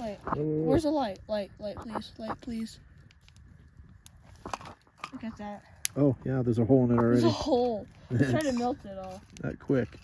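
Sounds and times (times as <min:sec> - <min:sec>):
campfire crackling: 0:00.0 - 0:10.0.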